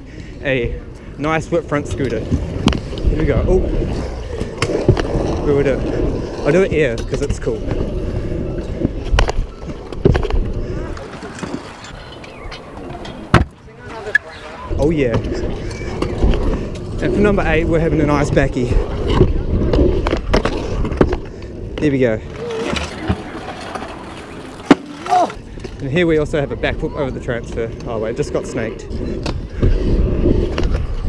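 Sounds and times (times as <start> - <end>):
scooter wheels rolling on concrete: 0.1 - 31.0.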